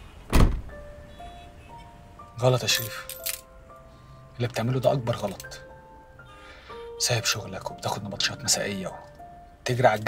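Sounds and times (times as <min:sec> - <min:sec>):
car door shutting: 0:00.3 - 0:00.8
soft sustained music notes: 0:00.7 - 0:10.0.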